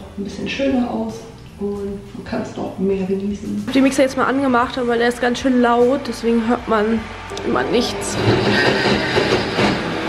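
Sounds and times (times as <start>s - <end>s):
blender running: 6.4s - 10.0s.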